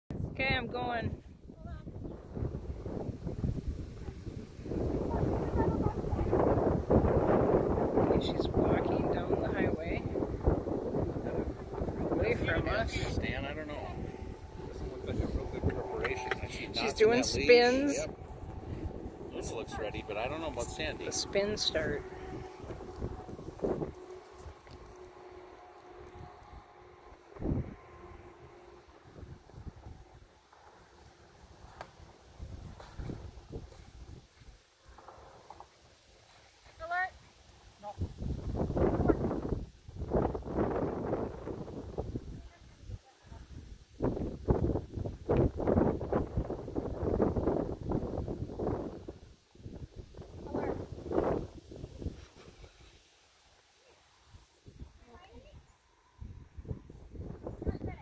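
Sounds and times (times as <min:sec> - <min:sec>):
people talking indistinctly: 0:05.0 - 0:06.4, 0:11.1 - 0:22.2.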